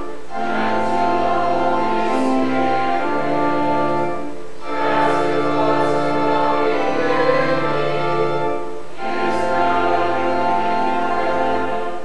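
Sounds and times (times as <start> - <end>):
church music in sustained chords: 0.0 - 12.0.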